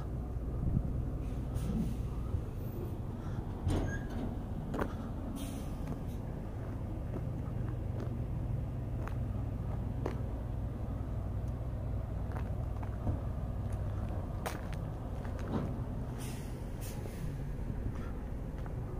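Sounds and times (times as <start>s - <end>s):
diesel truck engine idling: 0.0s - 18.9s.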